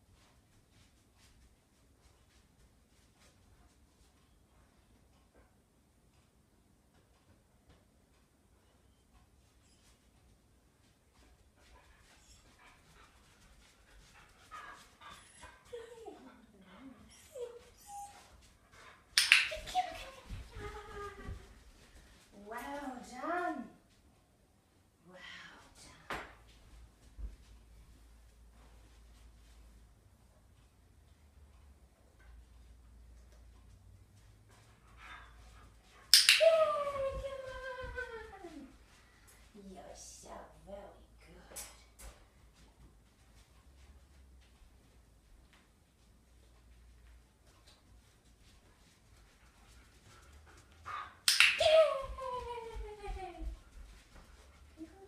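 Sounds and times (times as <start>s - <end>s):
dog whining: 17.0s - 18.3s.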